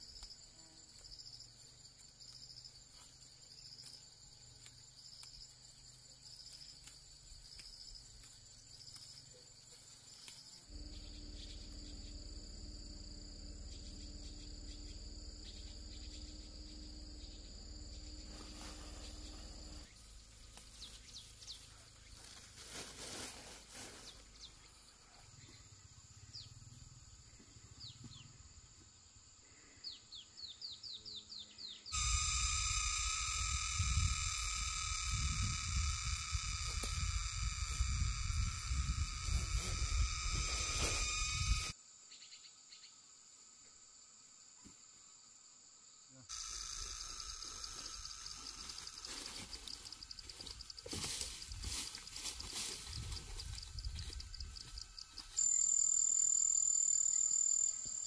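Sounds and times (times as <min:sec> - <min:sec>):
shrill insect tone: 0:00.0 - 0:28.3, 0:30.9 - 0:43.0, 0:46.1 - 0:58.0
insects buzzing: 0:00.0 - 0:58.0
bird chirps: 0:13.5 - 0:19.8.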